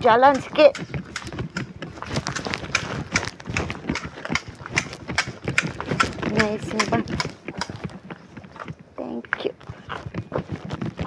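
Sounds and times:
footsteps on pavement: 0.0 - 11.0.

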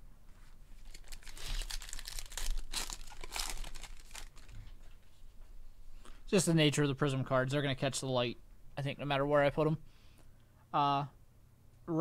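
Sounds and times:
foil wrapper tearing and crinkling: 0.8 - 4.5.

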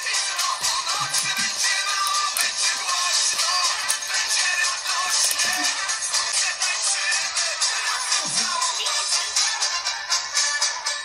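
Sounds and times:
music through small speaker: 0.0 - 11.0
toy's high electronic voice singing: 0.0 - 11.0.

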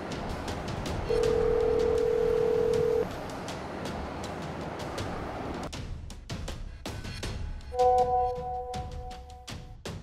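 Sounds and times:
telephone line tone: 1.1 - 3.0.

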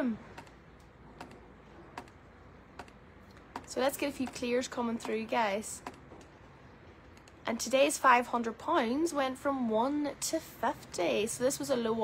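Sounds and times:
computer mouse clicks: 0.4 - 2.2, 2.8 - 4.4.

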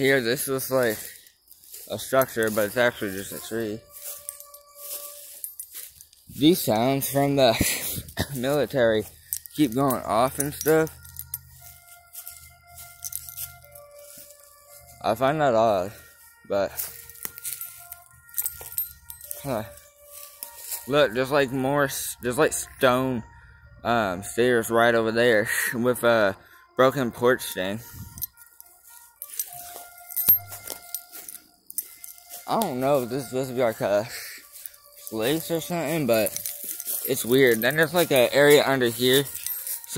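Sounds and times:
undergrowth rustling and crunching: 0.0 - 21.9, 27.8 - 39.9
distant music of held notes: 0.0 - 39.9
faint steady high tone: 0.0 - 39.9.

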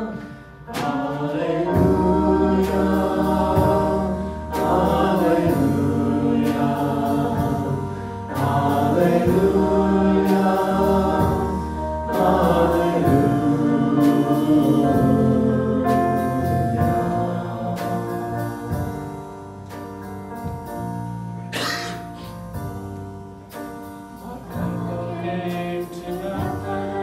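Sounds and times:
group singing a hymn: 0.0 - 19.1, 24.2 - 27.0
keyboard and bass guitar: 0.0 - 27.0.

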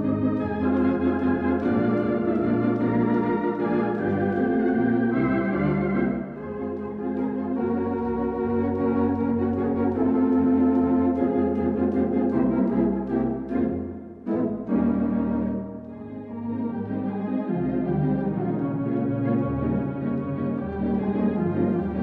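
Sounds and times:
electronic organ chords: 0.0 - 22.0
organ pedal bass line: 0.0 - 22.0.

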